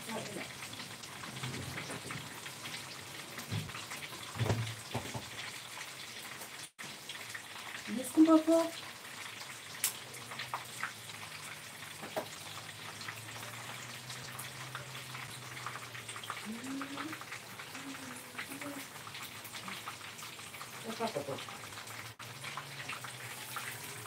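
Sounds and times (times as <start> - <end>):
food sizzling in oil: 0.0 - 24.0.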